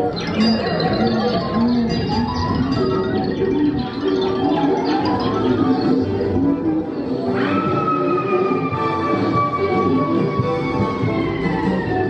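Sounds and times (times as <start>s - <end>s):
ride soundtrack music: 0.0s - 12.0s
whistle-like sliding tone: 0.0s - 12.0s.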